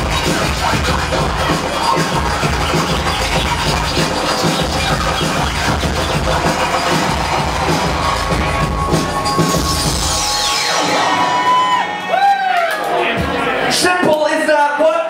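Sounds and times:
vinyl record scratching: 0.0s - 11.8s
hip hop beat: 0.0s - 13.6s.

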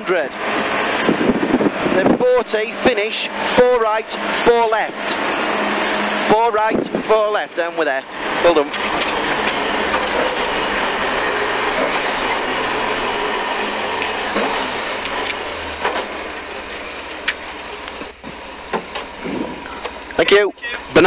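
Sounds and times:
rally car engine and tyre rumble: 0.0s - 21.0s
sharp clicks and knocks: 14.0s - 19.1s.

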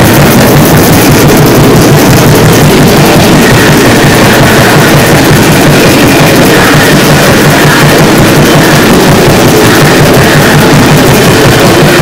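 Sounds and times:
distorted black metal: 0.0s - 12.0s.

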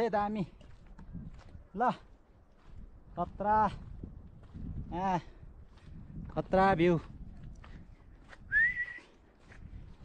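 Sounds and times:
rising whistle: 8.5s - 9.1s.

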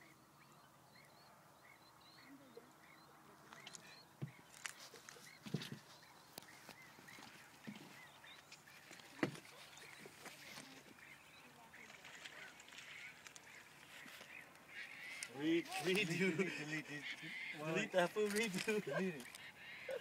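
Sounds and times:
distant water birds calling: 0.0s - 20.0s.

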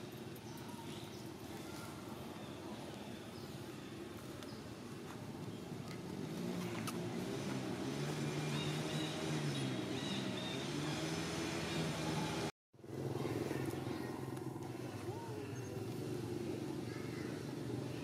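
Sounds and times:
vehicle engine humming: 3.6s - 18.0s.

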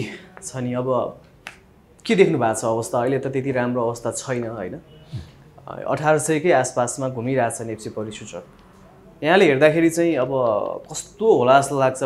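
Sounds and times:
man speaking: 2.0s - 8.5s.

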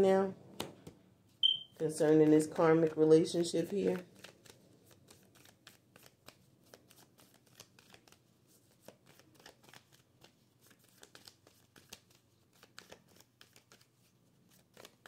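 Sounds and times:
cards being shuffled: 1.8s - 15.0s.

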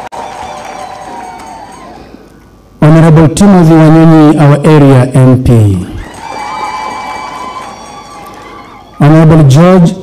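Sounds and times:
crowd clapping: 0.0s - 2.0s, 6.0s - 9.0s.

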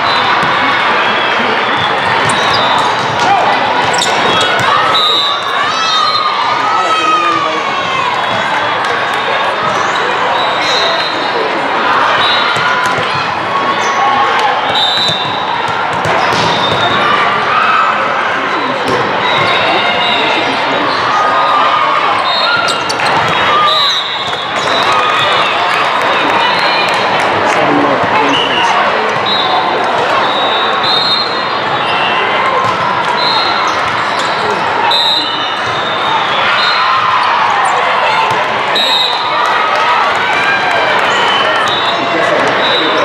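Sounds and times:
voices and shouts echoing: 0.0s - 43.0s.

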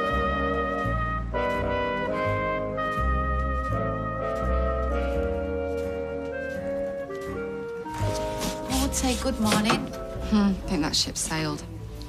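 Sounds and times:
music with held notes: 0.0s - 12.0s
utensils and crockery knocking: 9.4s - 10.1s.

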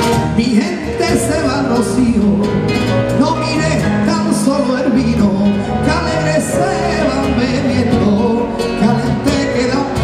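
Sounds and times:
man singing into a microphone: 0.3s - 10.0s.

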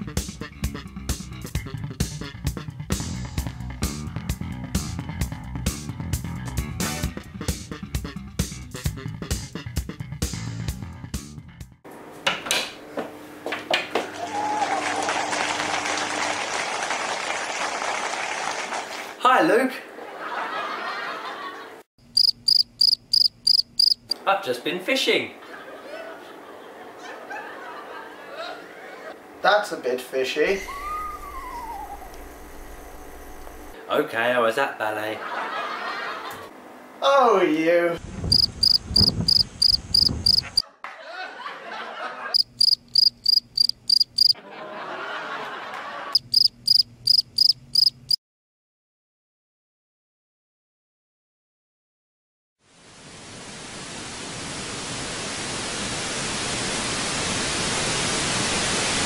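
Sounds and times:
cricket chirping: 22.1s - 24.2s, 38.3s - 40.6s, 42.4s - 44.4s, 46.2s - 48.2s.

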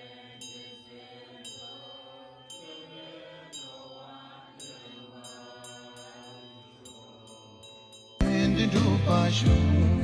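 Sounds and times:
low voices chanting: 0.0s - 10.0s.

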